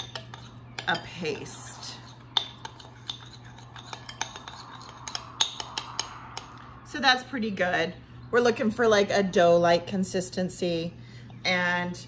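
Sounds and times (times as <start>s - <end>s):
metal spoon clinking on glass: 0.0s - 1.2s, 2.0s - 6.0s.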